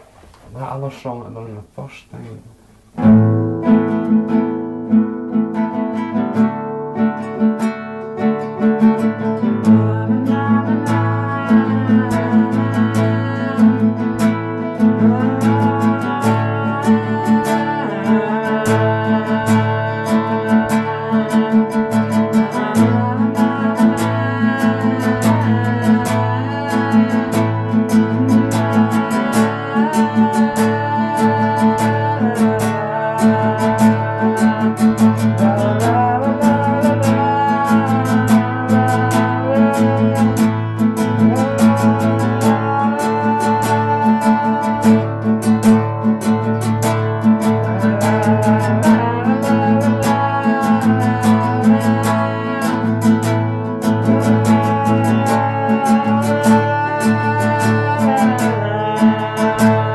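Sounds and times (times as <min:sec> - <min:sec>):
strummed acoustic guitar music: 0:02.5 - 0:59.9.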